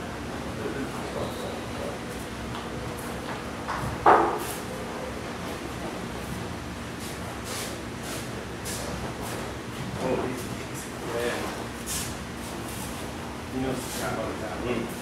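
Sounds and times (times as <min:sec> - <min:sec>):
room hum: 0:00.0 - 0:15.0.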